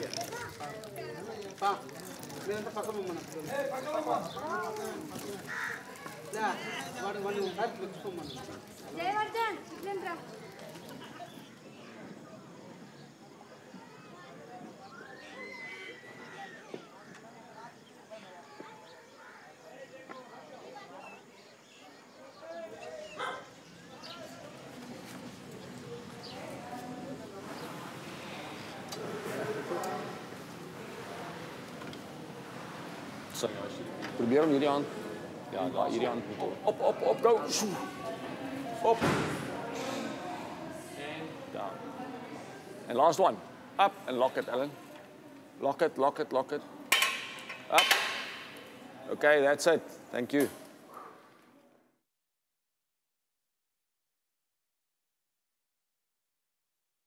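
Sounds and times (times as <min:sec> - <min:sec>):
faint background voices: 0:00.0 - 0:51.9
dog barking: 0:23.2 - 0:23.6.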